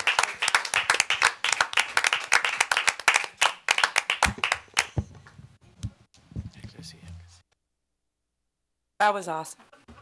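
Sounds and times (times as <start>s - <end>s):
group applauding: 0.0s - 5.0s.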